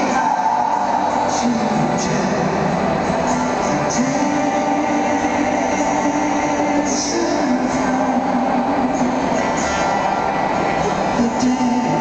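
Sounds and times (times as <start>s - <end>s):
acoustic guitar: 0.0s - 12.0s
concert room sound: 0.0s - 12.0s
man singing long notes: 0.0s - 12.0s.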